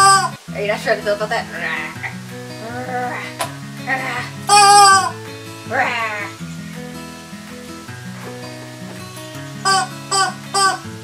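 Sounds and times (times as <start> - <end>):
rubber chicken toy squeal: 0.0 - 0.3, 4.5 - 5.1, 9.7 - 10.8
background music: 0.0 - 11.0.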